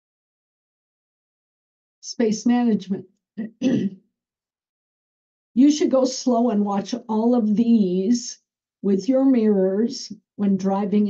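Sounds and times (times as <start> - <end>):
woman clearing her throat: 3.4 - 4.0.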